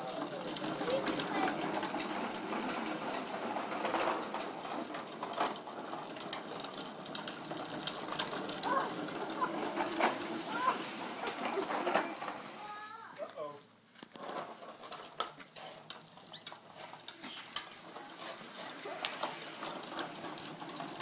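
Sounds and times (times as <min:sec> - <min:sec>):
plastic wheels rattling on asphalt: 0:00.0 - 0:21.0.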